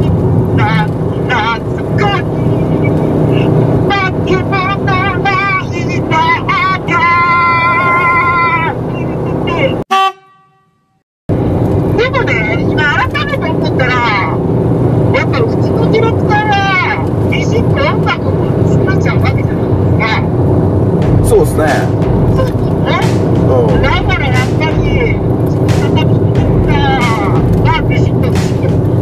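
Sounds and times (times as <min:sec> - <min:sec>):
vehicle and road noise: 0:00.0 - 0:09.8, 0:11.3 - 0:29.0
man singing: 0:21.3 - 0:28.8.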